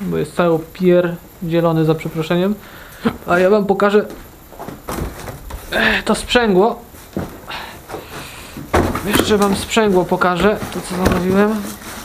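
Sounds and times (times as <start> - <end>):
rustling packaging: 4.5 - 12.0
loud thump: 8.6 - 9.4.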